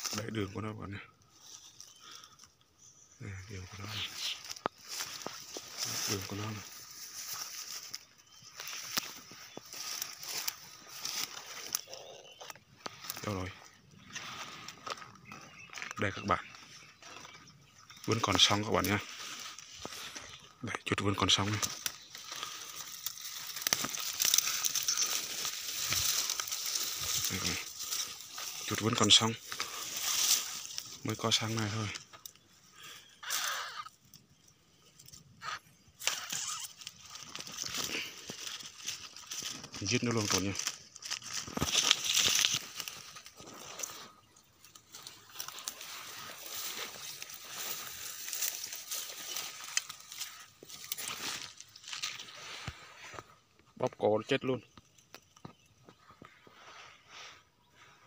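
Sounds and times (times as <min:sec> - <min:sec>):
dry leaves and twigs rustling: 0:00.0 - 0:58.0.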